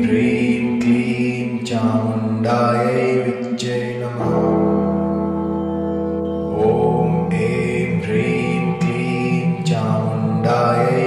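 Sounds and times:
voice chanting a mantra: 0.0 - 4.9, 6.5 - 11.0
low drone: 0.0 - 11.0.

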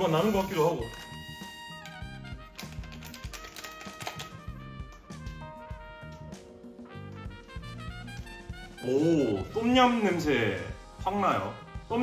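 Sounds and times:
instrumental music with beat: 0.0 - 12.0.

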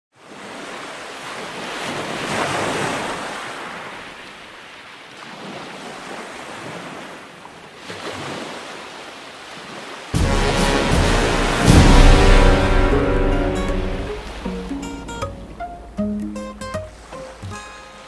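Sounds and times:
ocean waves surging: 0.2 - 7.2, 7.8 - 18.0.

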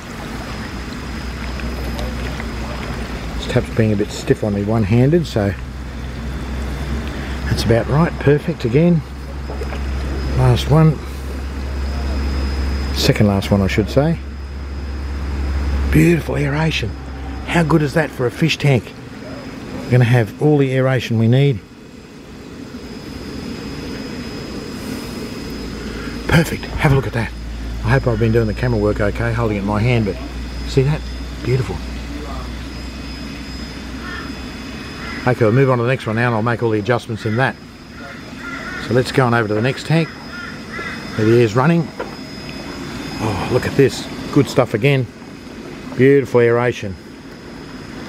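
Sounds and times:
aquarium air bubbling: 0.0 - 4.8
low rumble: 0.0 - 20.1
low steady rumble: 0.0 - 48.0.

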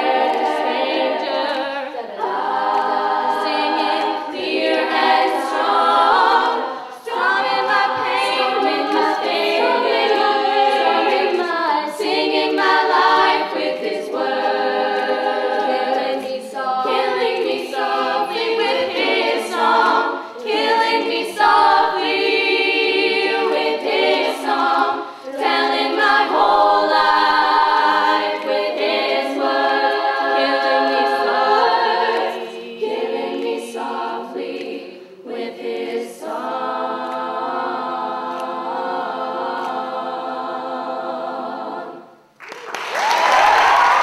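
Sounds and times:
female choir singing a cappella: 0.0 - 42.4.

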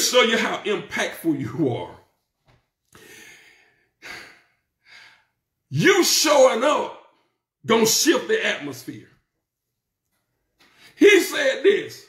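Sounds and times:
man preaching: 0.0 - 2.1, 5.7 - 9.2, 10.8 - 12.0
man breathing: 2.9 - 5.6, 10.6 - 11.0.

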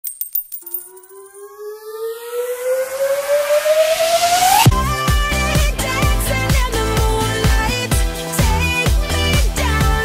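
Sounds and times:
electronic riser sweep: 0.9 - 5.5.

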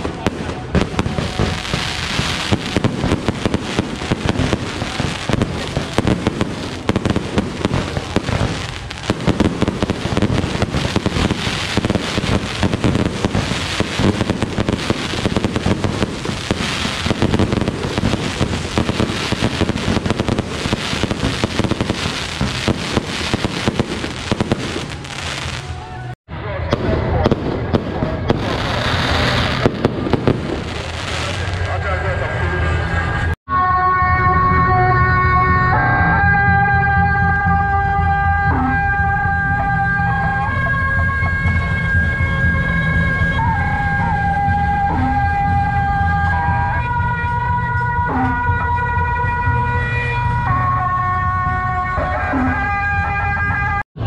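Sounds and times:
fireworks launching and bursting: 0.0 - 33.4.

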